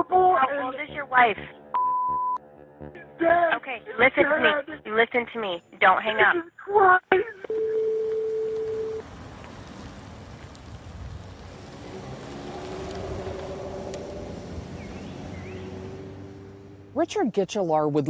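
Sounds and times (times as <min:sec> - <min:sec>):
low outdoor rumble: 0:07.3 - 0:17.0
telephone line tone: 0:07.4 - 0:09.0.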